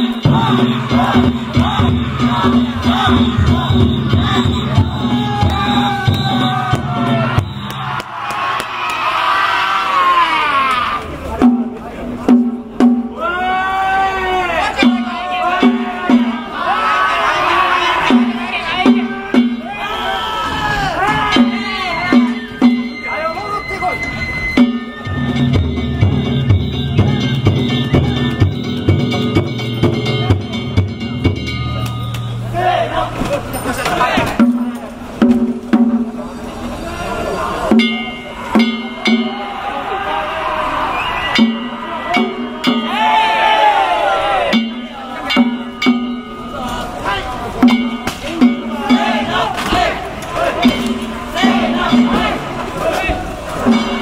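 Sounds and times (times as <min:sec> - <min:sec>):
people shouting: 0:00.0 - 0:11.4, 0:13.1 - 0:29.4, 0:32.2 - 0:34.5, 0:36.7 - 0:54.0
people calling out: 0:00.0 - 0:12.0, 0:13.1 - 0:30.6, 0:31.7 - 0:35.0, 0:36.5 - 0:54.0
festival drums: 0:00.0 - 0:54.0
hand-struck gongs: 0:24.6 - 0:32.6, 0:37.7 - 0:39.6, 0:41.3 - 0:43.4, 0:44.2 - 0:46.8, 0:47.6 - 0:49.5.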